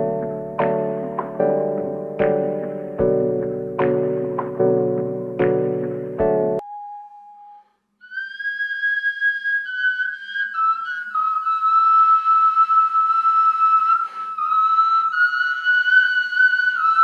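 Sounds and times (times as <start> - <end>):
high whistle-like note: 6.6 - 17.0.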